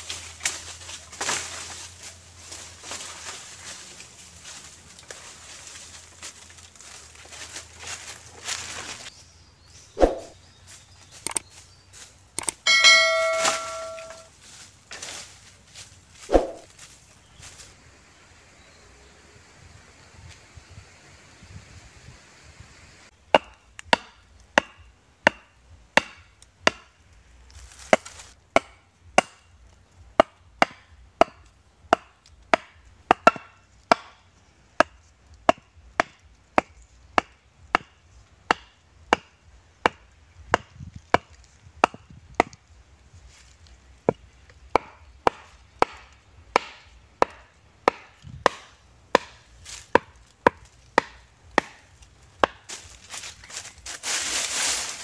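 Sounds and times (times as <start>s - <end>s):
wooden stakes being pounded: 0.0s - 9.1s, 10.0s - 10.4s, 12.3s - 14.3s, 16.2s - 16.8s, 23.1s - 42.7s, 43.3s - 55.0s.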